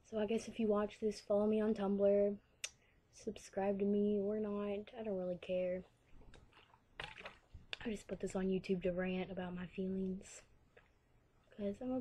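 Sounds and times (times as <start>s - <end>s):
plastic bottle being handled: 6.2s - 8.0s.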